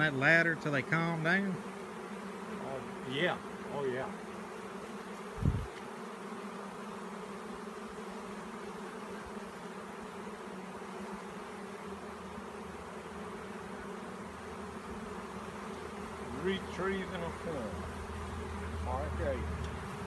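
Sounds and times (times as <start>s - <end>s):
bee swarm buzzing: 0.0s - 20.0s.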